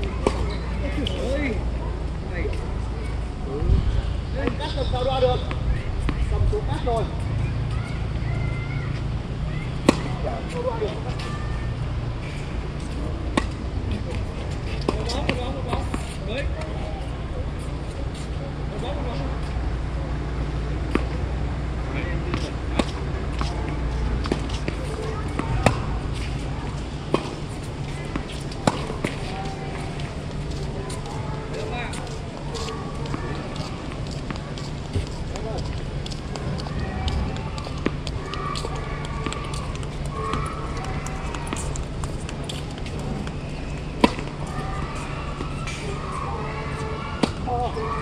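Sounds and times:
people talking: 0:00.0 - 0:03.8, 0:04.4 - 0:11.8, 0:12.8 - 0:48.0
tennis ball hit by rackets: 0:09.8 - 0:10.2, 0:24.2 - 0:26.3, 0:28.1 - 0:29.9, 0:44.0 - 0:44.6.

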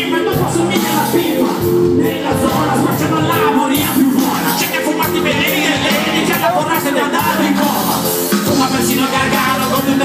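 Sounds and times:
lead vocal singing: 0:00.0 - 0:10.0
live band playing: 0:00.0 - 0:10.0.

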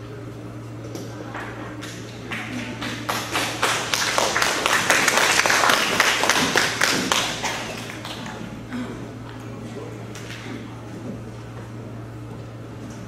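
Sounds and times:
steady low hum: 0:00.0 - 0:13.0
audience applauding: 0:02.2 - 0:08.6.

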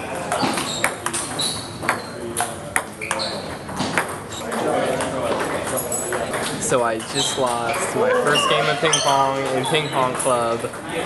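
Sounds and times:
voices talking: 0:04.3 - 0:11.0.

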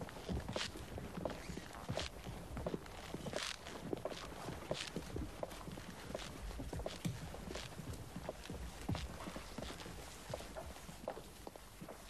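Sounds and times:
footsteps on hall floor: 0:00.0 - 0:12.0.

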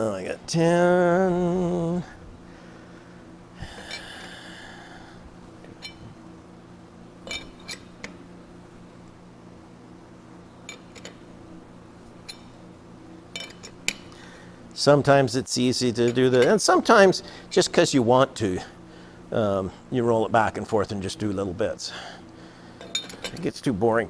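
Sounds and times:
steady low hum: 0:00.0 - 0:24.0.

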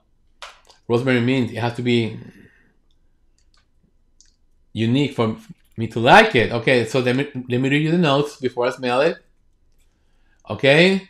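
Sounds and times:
person speaking: 0:00.4 - 0:02.5, 0:04.7 - 0:09.2, 0:10.5 - 0:11.0
faint small clicks: 0:02.9 - 0:04.6, 0:09.2 - 0:10.5.

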